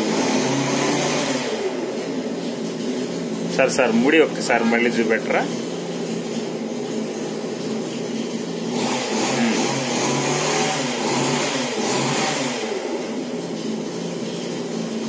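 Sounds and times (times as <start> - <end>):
engine running: 0.0 - 15.0.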